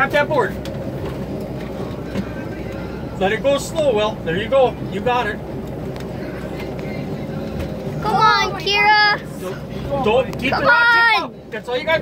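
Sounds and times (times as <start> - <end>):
boat motor humming: 0.0 - 12.0.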